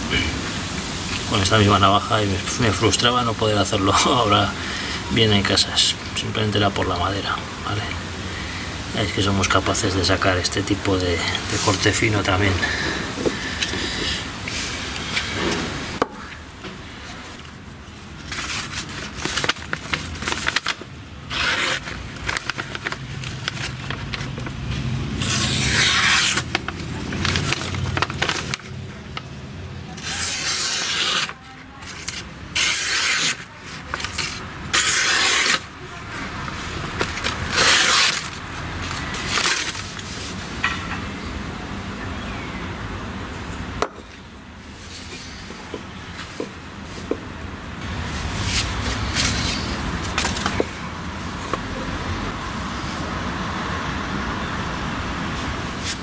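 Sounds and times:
blade slicing paper: 0:18.3 - 0:24.5, 0:25.1 - 0:29.2, 0:29.9 - 0:40.3, 0:48.4 - 0:50.6.

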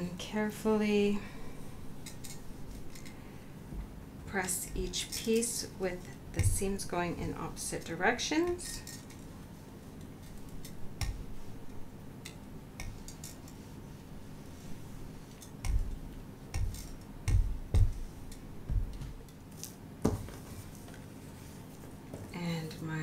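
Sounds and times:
faint steady hum: 0:00.0 - 0:23.0
iron knocking on mat: 0:16.6 - 0:19.2.

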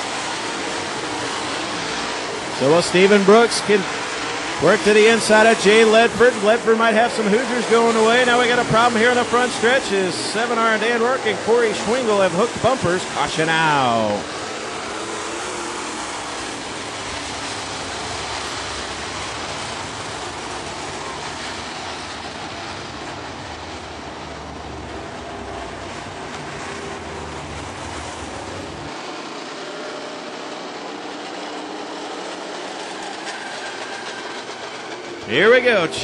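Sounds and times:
race cars rumbling: 0:00.0 - 0:36.0.

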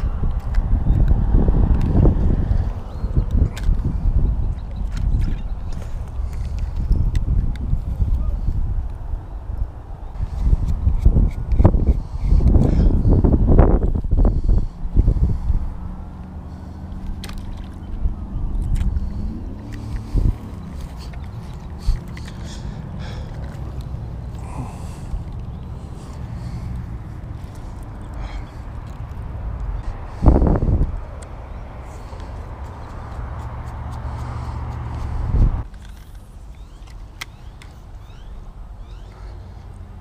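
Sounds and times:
small clicks and rustles: 0:00.0 - 0:08.2, 0:35.6 - 0:37.9
wind buffeting microphone: 0:00.0 - 0:40.0.

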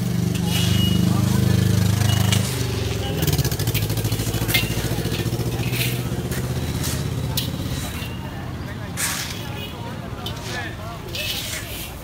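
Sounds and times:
vehicle engine running: 0:00.0 - 0:09.4
shovels scraping loose gravel: 0:00.3 - 0:12.0.

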